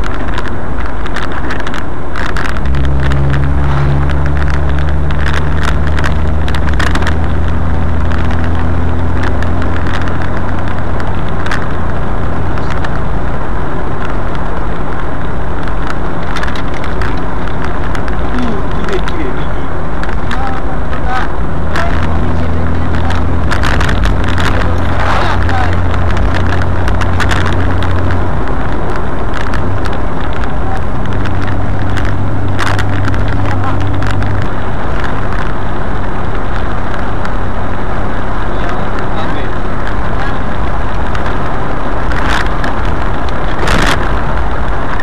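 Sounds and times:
car engine running: 0.0 - 45.0
road and wind noise: 0.0 - 45.0.

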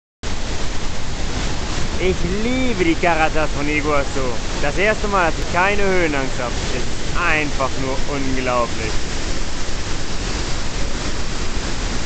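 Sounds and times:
waterfall rushing: 0.2 - 12.0.

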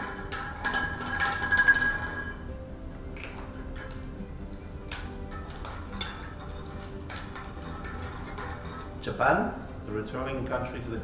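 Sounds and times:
plastic balls clicking on glass bowl: 0.0 - 2.5, 3.1 - 9.8
soft background music: 0.0 - 11.0.

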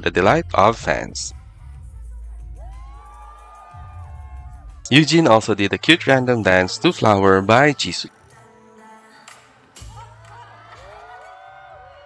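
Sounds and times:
music with deep bass: 0.0 - 7.9
crowd cheering and screaming: 2.5 - 8.6, 9.8 - 12.0
high held voices: 4.9 - 8.5.

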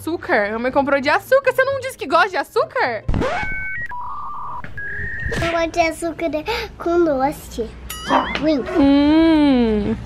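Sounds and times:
electronic rising sweep: 3.1 - 5.5
electronic beep tones: 3.2 - 5.5.

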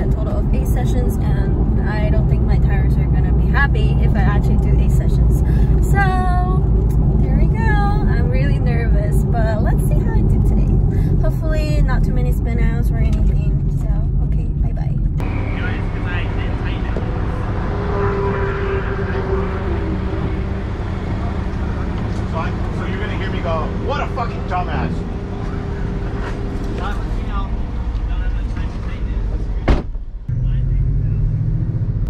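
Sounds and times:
woman talking: 0.0 - 15.2
car cabin road and engine drone: 0.0 - 32.0.

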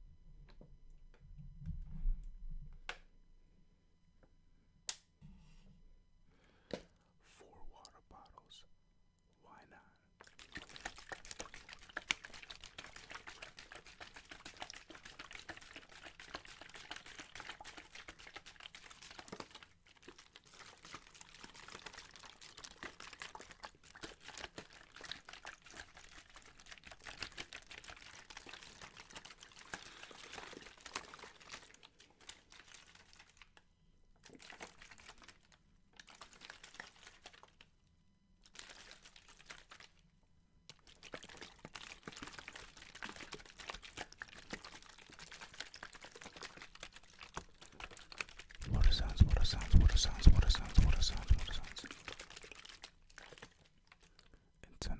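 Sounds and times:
water sloshing in plastic bottles: 10.2 - 33.6, 34.2 - 37.7, 38.4 - 40.0, 40.7 - 54.4
plastic crinkling: 10.2 - 37.7, 38.4 - 40.0, 40.7 - 54.3.

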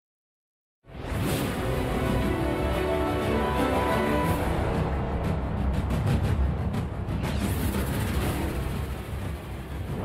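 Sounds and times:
news theme music: 0.9 - 10.0.

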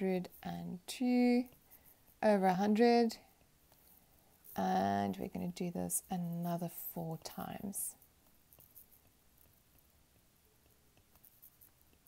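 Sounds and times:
stylus tapping and scratching: 0.0 - 12.0.

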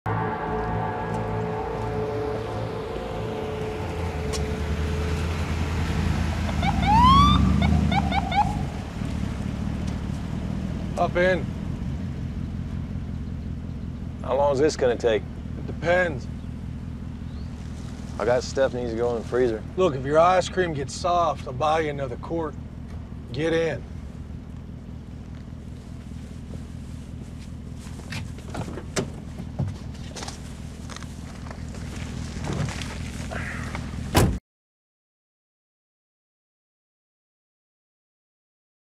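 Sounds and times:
siren chirps: 0.1 - 9.8
car engine rumbling: 0.1 - 34.4
footsteps: 0.8 - 5.2, 25.2 - 33.4
siren whoop: 6.4 - 8.9.

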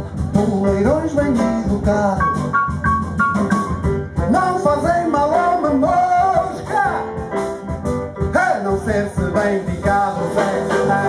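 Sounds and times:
live jazz band: 0.0 - 11.0.

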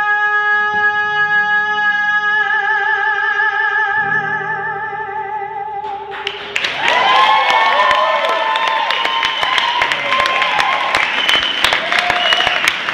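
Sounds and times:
audience clapping and cheering: 6.1 - 12.9
high whoops: 6.6 - 12.9.

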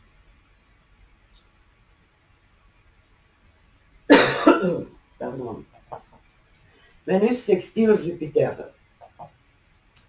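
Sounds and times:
woman coughing: 4.1 - 4.9.

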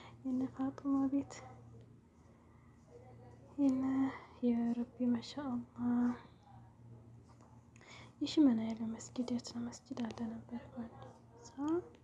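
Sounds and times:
woman speaking softly: 0.0 - 7.2, 8.0 - 12.0.

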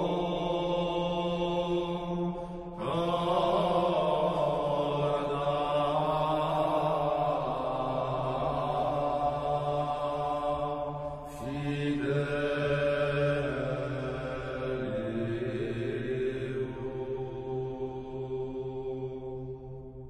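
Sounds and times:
vocal chant with held notes: 0.0 - 20.0.

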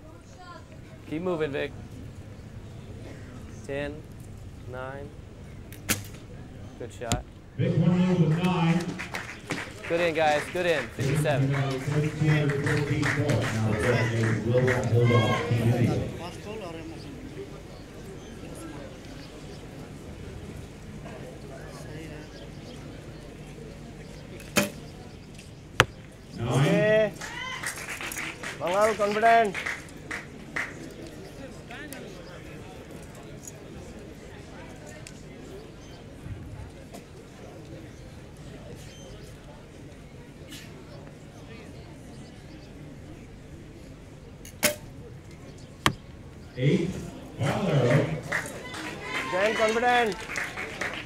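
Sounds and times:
arrow striking target: 5.8 - 6.2, 24.5 - 24.8, 44.6 - 44.9
man shouting: 13.7 - 16.1, 26.4 - 27.5.

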